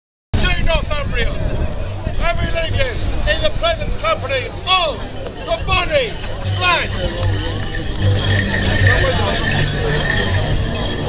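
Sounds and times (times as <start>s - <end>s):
wind rumble on microphone: 0.4s - 11.0s.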